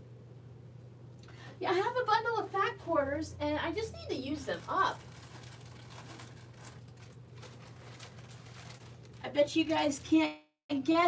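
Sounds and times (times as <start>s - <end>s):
steady low hum: 0.0s - 10.1s
faint rustling and handling: 4.1s - 10.3s.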